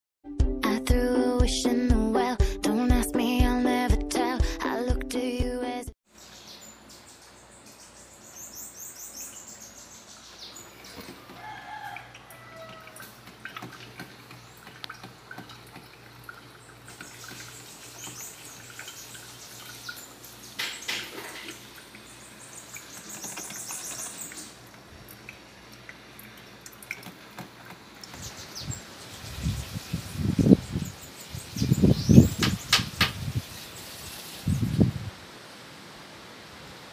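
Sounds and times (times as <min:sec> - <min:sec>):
birds chirping: 0:06.1 - 0:11.4, 0:16.2 - 0:24.7, 0:28.0 - 0:34.0
rooster crowing: 0:11.1 - 0:13.2
coffee maker gurgling: 0:12.0 - 0:28.0.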